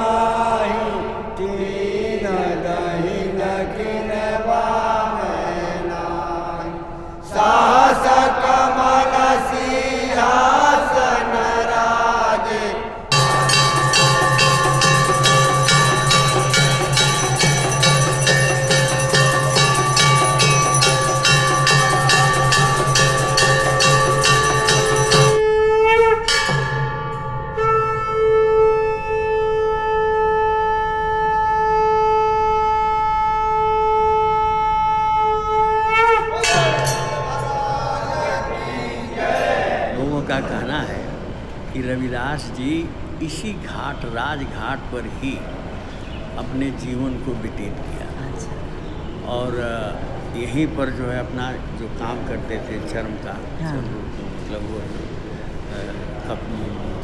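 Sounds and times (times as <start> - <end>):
group of voices singing: 0.0 - 14.0, 36.4 - 41.6
steady held tone: 12.3 - 39.4
dholak drum beats: 13.1 - 25.5, 26.3 - 27.3
temple bell ringing: 13.1 - 28.3, 36.2 - 39.0
conch shell blown: 13.1 - 38.0
man chanting devotional song: 36.3 - 39.2, 39.8 - 45.7, 46.4 - 48.6, 49.2 - 57.0.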